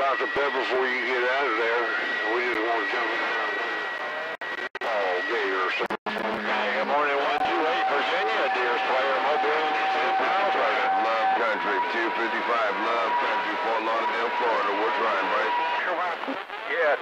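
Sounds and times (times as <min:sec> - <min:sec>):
radio voices talking over each other: 0:00.0 - 0:17.0
radio whistles: 0:00.0 - 0:17.0.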